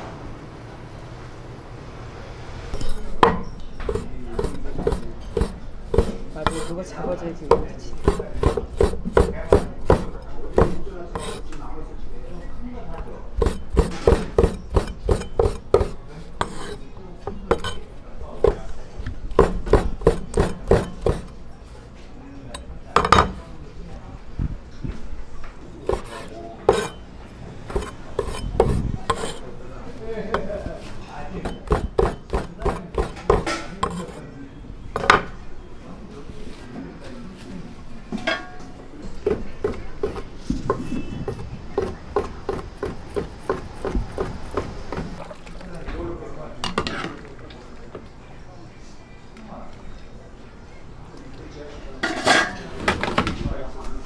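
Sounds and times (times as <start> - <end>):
knife chopping on wooden board: 3.2 - 6.7, 7.5 - 11.4, 13.4 - 16.8, 19.3 - 21.3, 25.8 - 27.0, 27.7 - 29.4, 31.4 - 34.1, 39.2 - 45.2.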